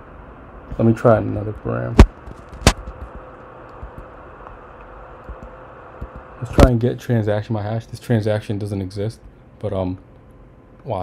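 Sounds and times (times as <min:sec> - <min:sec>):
low steady background hum: 0:00.0 - 0:11.0.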